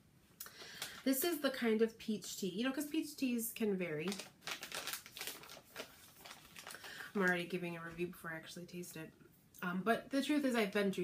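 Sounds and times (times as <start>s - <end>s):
tea packaging crinkling: 0.6s - 1.2s, 4.0s - 7.6s.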